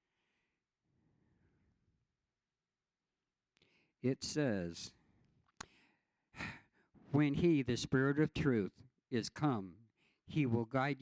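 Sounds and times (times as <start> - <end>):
man speaking: 4.0 - 5.0, 7.1 - 11.0
man breathing in: 5.6 - 6.9.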